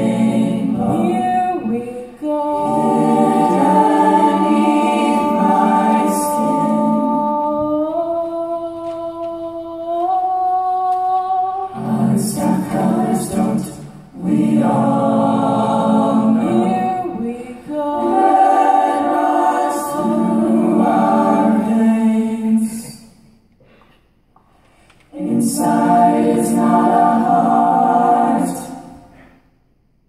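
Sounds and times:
choir singing a cappella: 0:00.0 - 0:23.4, 0:25.1 - 0:29.4.

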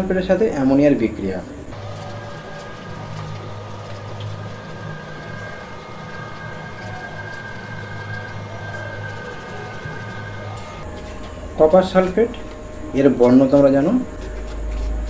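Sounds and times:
low mechanical hum: 0:01.3 - 0:15.0.

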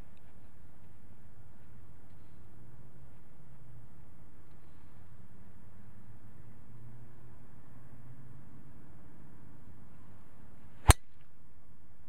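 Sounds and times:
golf club striking ball: 0:10.8 - 0:11.2.

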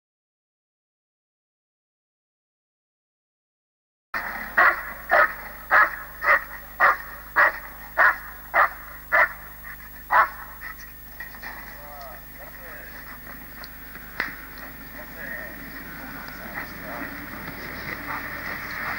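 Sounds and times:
dog barking: 0:04.4 - 0:10.9, 0:17.8 - 0:18.9.

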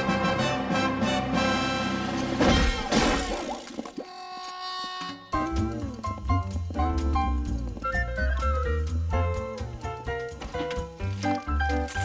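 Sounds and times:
cartoon crash: 0:02.4 - 0:04.2.

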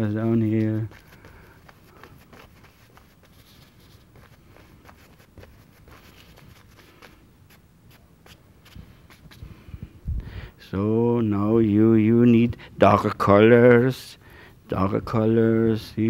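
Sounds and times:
brush dabbing paint on canvas: 0:00.0 - 0:09.7.

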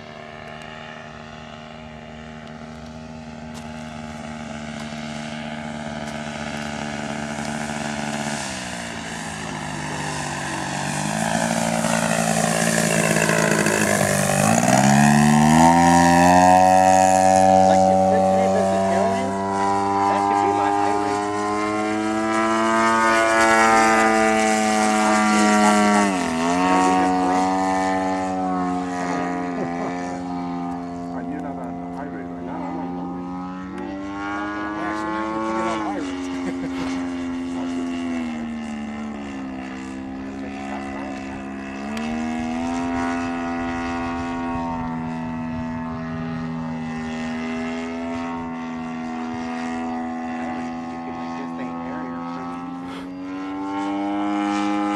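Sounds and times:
model plane engine drone: 0:00.0 - 0:54.9.

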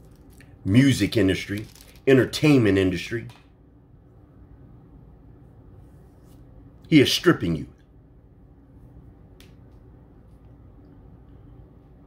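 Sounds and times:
faint steady hum: 0:00.0 - 0:12.0.

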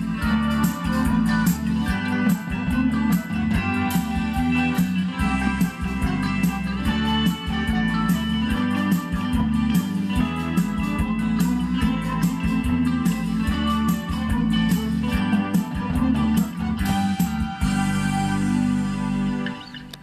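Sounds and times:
drum kit beat: 0:00.0 - 0:19.4
electric guitars: 0:00.0 - 0:20.0.

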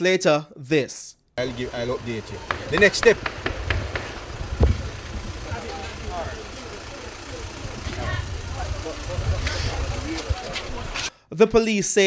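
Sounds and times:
distant voices: 0:01.4 - 0:11.1
sharp knock: 0:02.5 - 0:04.2
wind and handling rumble on microphone: 0:03.2 - 0:06.1, 0:07.5 - 0:11.1.

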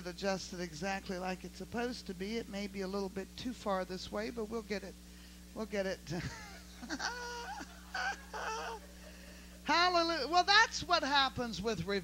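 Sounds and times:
low electrical hum: 0:00.0 - 0:12.0
woman laughing into a microphone: 0:06.2 - 0:09.6.

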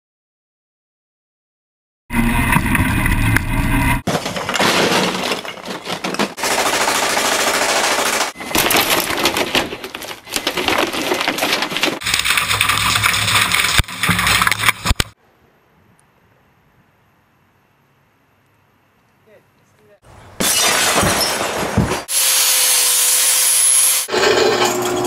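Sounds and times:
window pane shattering: 0:04.0 - 0:15.0, 0:20.4 - 0:22.1
rapid-fire shooting: 0:06.4 - 0:08.4.

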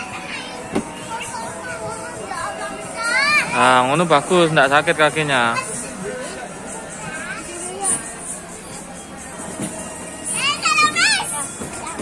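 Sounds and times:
background music: 0:00.0 - 0:12.0
children chattering: 0:00.0 - 0:12.0.

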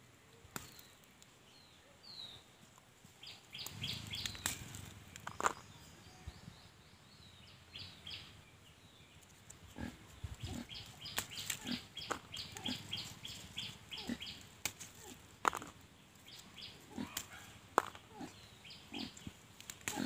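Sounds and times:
rustling leaves: 0:00.0 - 0:06.7, 0:07.4 - 0:20.0
small snaps of picked chillies: 0:00.5 - 0:01.3, 0:03.6 - 0:05.6, 0:19.5 - 0:20.0
piglet grunting: 0:09.8 - 0:10.9, 0:11.6 - 0:13.2, 0:13.9 - 0:14.4, 0:16.8 - 0:17.4, 0:18.0 - 0:19.2.

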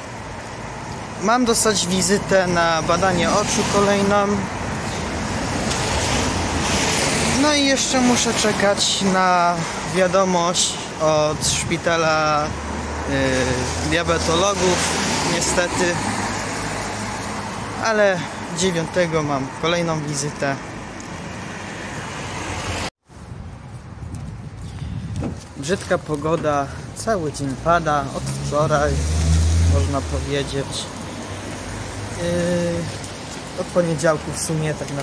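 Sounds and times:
tyres hissing on wet road: 0:00.1 - 0:10.0, 0:12.3 - 0:18.6, 0:28.1 - 0:35.0
wind on microphone: 0:11.2 - 0:11.9, 0:22.7 - 0:25.7.

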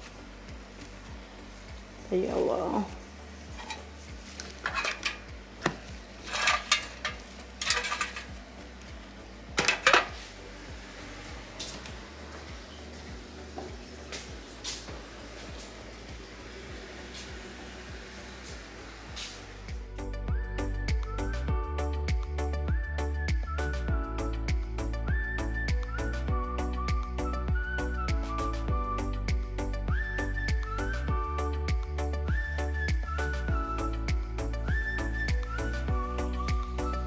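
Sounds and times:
background music: 0:00.0 - 0:37.0
dishes clinking and clattering: 0:03.6 - 0:03.9, 0:04.6 - 0:08.4, 0:09.6 - 0:10.2.

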